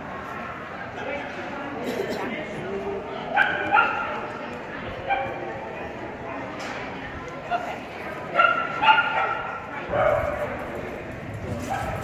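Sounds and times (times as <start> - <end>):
dog barking: 3.4 - 4.2, 8.4 - 10.4, 11.6 - 12.0.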